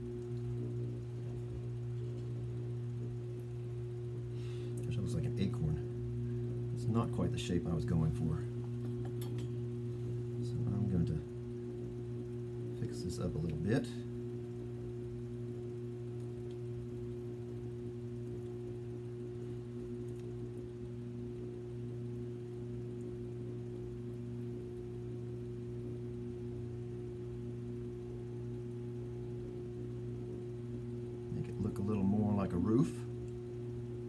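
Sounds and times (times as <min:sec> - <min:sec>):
potter's wheel motor humming: 0:00.0 - 0:34.0.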